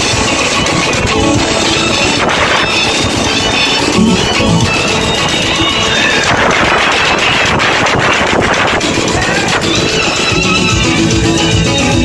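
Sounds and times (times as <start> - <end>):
live praise band music: 0.0 - 12.0
fast dense drumming: 3.9 - 7.0.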